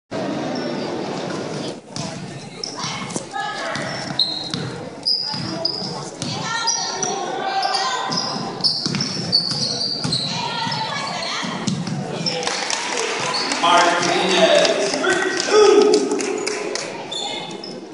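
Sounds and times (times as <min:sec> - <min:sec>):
sneakers squeaking: 0:00.5 - 0:14.5, 0:16.3 - 0:17.9
voices calling out: 0:02.6 - 0:17.9.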